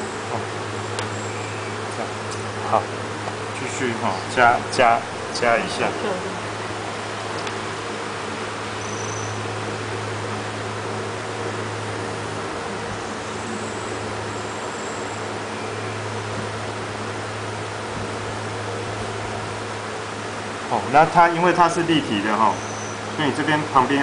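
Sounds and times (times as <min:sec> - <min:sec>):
low hum: 0:00.0 - 0:24.0.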